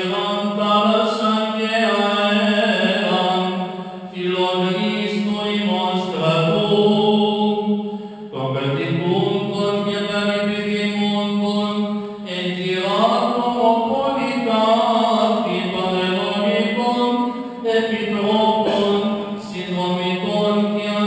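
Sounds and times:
man chanting a prayer: 0:00.0 - 0:07.7, 0:08.3 - 0:21.0.

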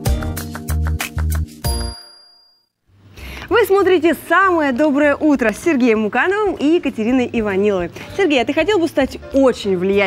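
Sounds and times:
upbeat jingle music: 0:00.0 - 0:02.8.

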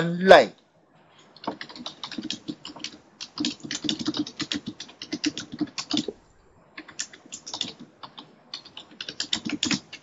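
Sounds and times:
computer keyboard typing: 0:01.4 - 0:06.2, 0:06.8 - 0:10.0.

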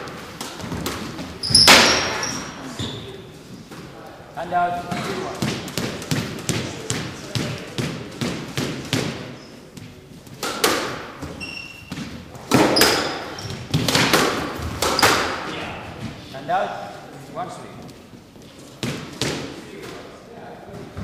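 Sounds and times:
squash ball hits: 0:00.0 - 0:02.6, 0:04.9 - 0:15.6, 0:18.8 - 0:20.0
sneaker squeaks on wooden floor: 0:01.2 - 0:03.3, 0:11.2 - 0:13.8, 0:14.6 - 0:15.4.

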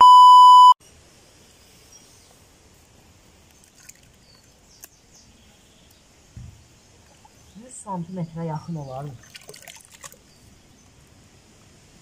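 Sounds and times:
steady low hiss: 0:00.6 - 0:09.2, 0:10.1 - 0:12.0
soft thump: 0:06.4 - 0:06.6.

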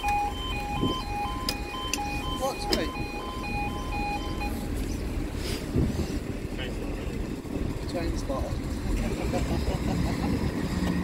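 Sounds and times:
two-tone warning alarm: 0:00.0 - 0:04.7
steady low rumble: 0:00.0 - 0:10.5.

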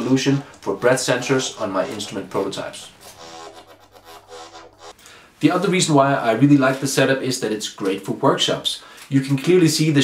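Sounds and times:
synthesizer lead note: 0:01.2 - 0:05.0.

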